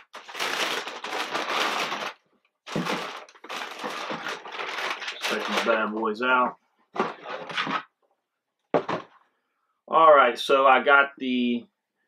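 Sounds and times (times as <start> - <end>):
tissue paper rustling: 0.0 - 6.0.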